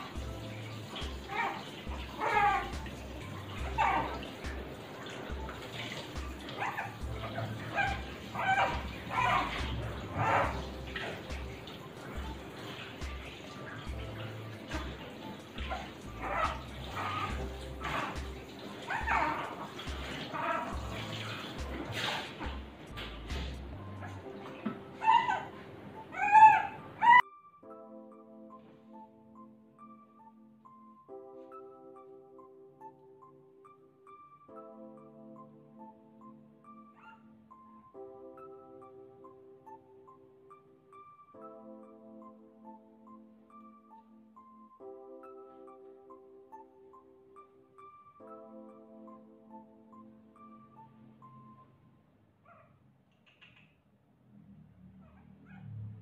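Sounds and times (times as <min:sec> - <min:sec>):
shower spraying water: 0:00.0 - 0:27.1
puppy whining: 0:00.0 - 0:27.2, 0:36.6 - 0:38.6, 0:52.4 - 0:52.7, 0:55.0 - 0:55.8.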